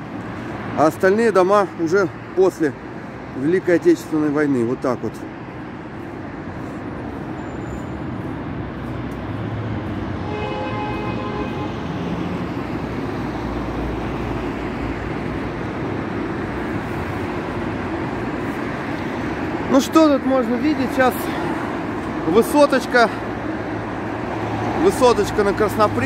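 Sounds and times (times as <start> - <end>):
road traffic rush: 0.0 - 26.0.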